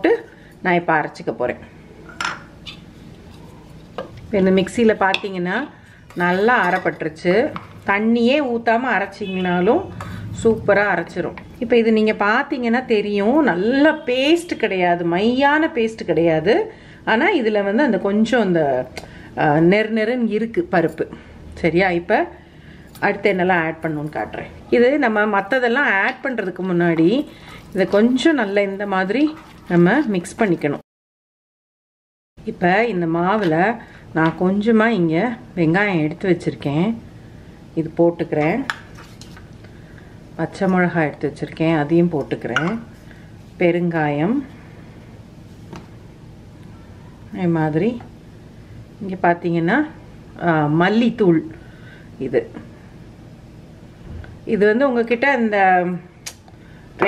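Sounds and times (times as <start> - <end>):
woman talking: 0.0 - 1.7, 4.3 - 22.4, 23.0 - 30.8, 32.4 - 37.0, 37.8 - 38.7, 40.4 - 42.9, 43.6 - 44.5, 47.3 - 48.1, 49.0 - 51.6, 52.2 - 52.7, 54.5 - 56.1.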